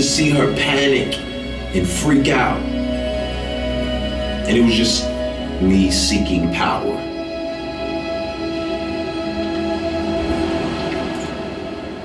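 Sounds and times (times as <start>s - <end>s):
droning chord music: 0.0s - 12.0s.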